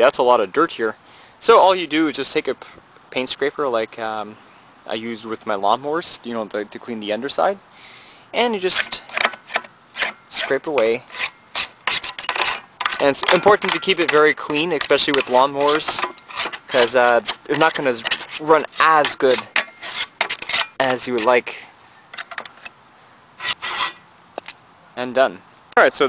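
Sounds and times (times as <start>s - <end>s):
paint scraper scraping dirt: 8.6s - 22.7s, 23.4s - 24.1s.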